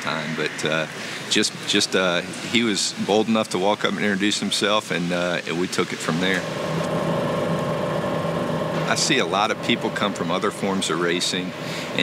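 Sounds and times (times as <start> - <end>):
engine idling: 6.3 - 12.0.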